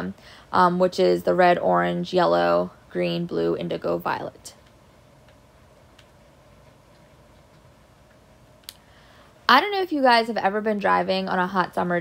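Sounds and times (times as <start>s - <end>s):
faint steady hum: 0.0s - 12.0s
small sharp click: 8.6s - 8.8s.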